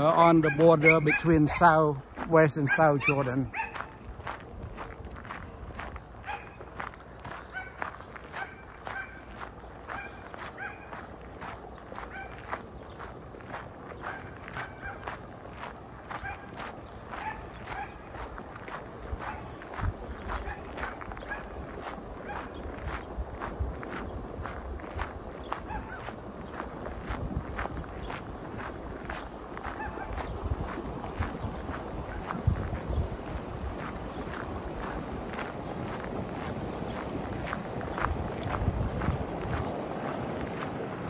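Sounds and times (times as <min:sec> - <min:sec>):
footsteps crunching on gravel: 0:00.0 - 0:41.0
rushing water: 0:17.8 - 0:41.0.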